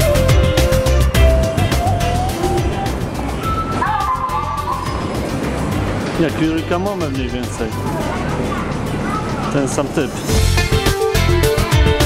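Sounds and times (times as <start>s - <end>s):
train moving: 0.0s - 10.9s
background music: 0.0s - 12.0s.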